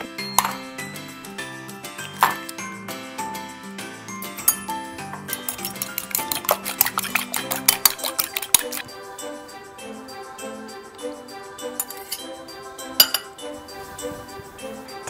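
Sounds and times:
background music: 0.0s - 15.0s
fork clinking on glass bowl: 5.3s - 8.9s, 13.0s - 13.3s.

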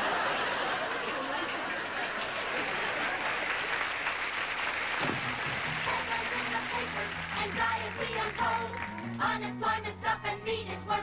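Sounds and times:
studio audience laughing: 0.0s - 4.0s
audience applauding: 0.0s - 9.4s
music: 5.0s - 11.0s.

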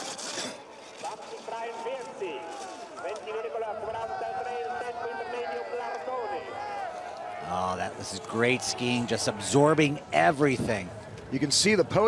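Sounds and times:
skis scraping on hard snow: 0.0s - 3.5s
spectators shouting and cheering: 1.0s - 12.0s.

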